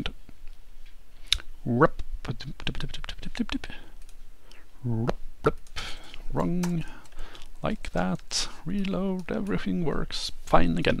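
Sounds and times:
computer keyboard typing: 2.8s - 4.2s, 5.5s - 10.0s.

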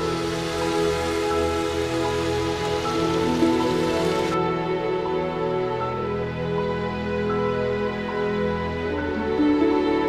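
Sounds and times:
steady hiss: 0.0s - 4.4s
soft music of held notes: 0.0s - 10.0s.

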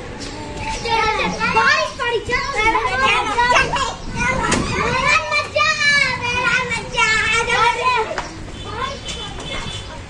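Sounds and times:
children shouting: 0.3s - 10.0s.

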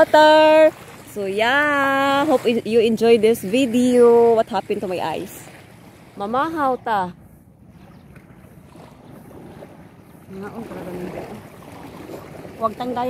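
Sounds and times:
sea: 0.0s - 13.0s
woman speaking softly: 6.2s - 7.2s, 10.3s - 11.4s.

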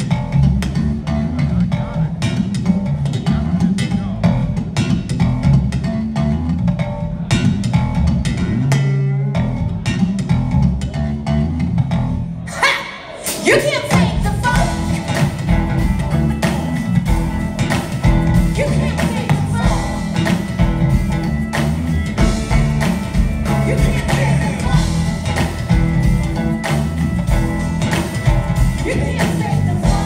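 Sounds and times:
funk band playing: 0.0s - 30.0s.

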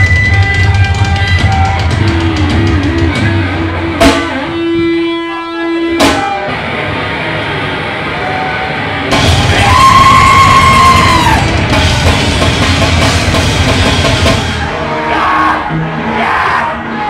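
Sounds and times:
live rock band playing loud: 0.0s - 16.2s.

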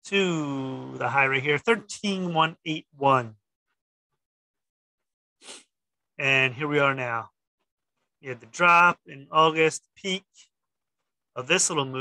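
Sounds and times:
man speaking: 0.0s - 3.5s, 6.2s - 7.4s.

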